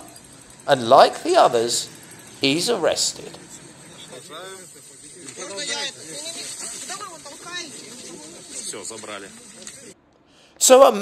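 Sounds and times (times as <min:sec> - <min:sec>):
people talking: 0:00.7 - 0:10.0, 0:10.6 - 0:11.0.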